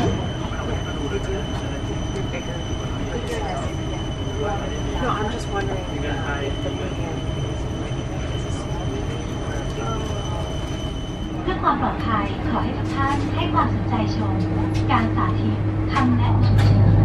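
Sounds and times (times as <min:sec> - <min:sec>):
faint voices: 0:00.0 - 0:16.4
air conditioning rumble: 0:00.0 - 0:17.0
woman making announcement: 0:11.4 - 0:16.7.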